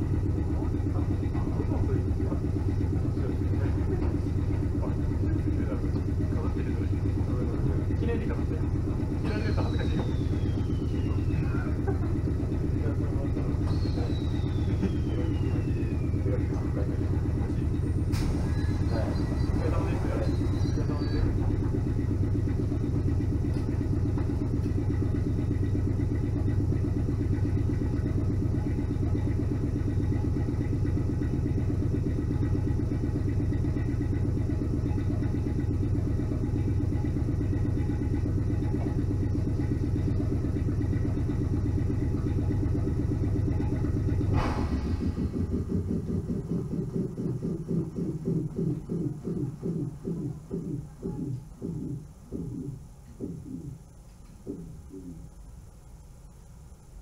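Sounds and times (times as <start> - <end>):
electric train motor whine: 0.0 - 57.0
train equipment low hum: 0.0 - 57.0.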